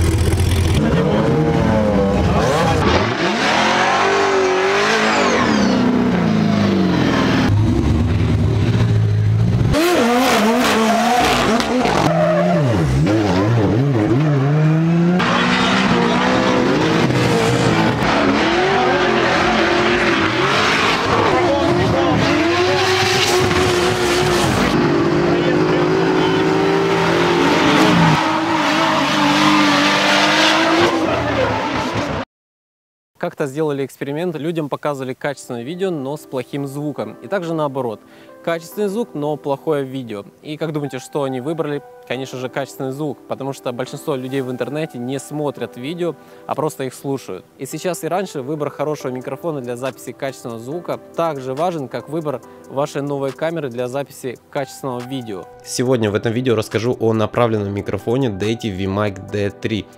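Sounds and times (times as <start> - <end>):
car engines revving: 0.0 - 32.2.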